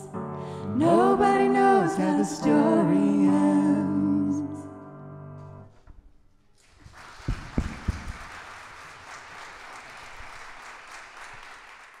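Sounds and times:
audience applause: 6.6s - 12.0s.

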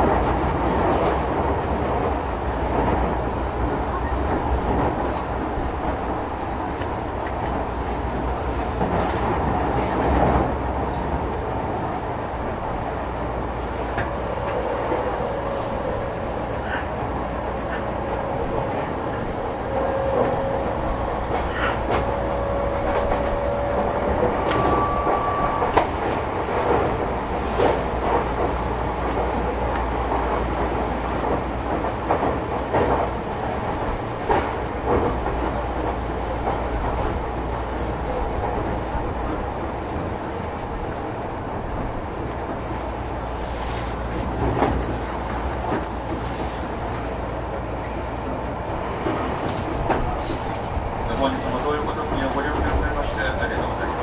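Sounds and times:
electric train rumble: 0.0s - 54.0s.

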